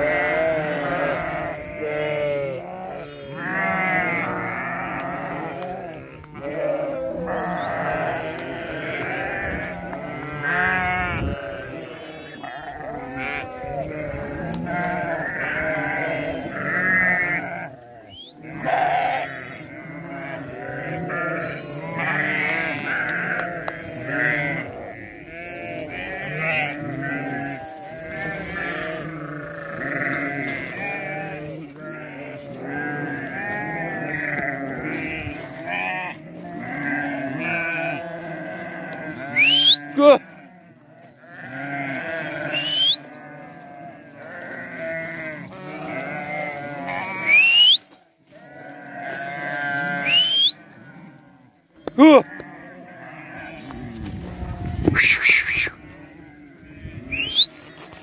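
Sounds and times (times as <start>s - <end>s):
flock of sheep and goats bleating: 0.0s - 58.0s
man shouting: 52.0s - 52.3s.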